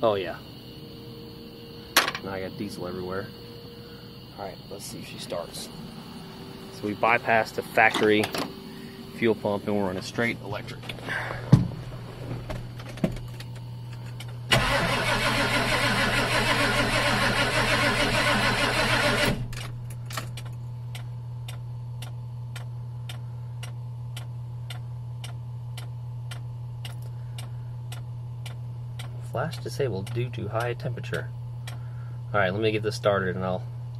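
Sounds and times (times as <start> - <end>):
low hum: 0.0 - 33.0
starter cranking engine: 14.5 - 19.6.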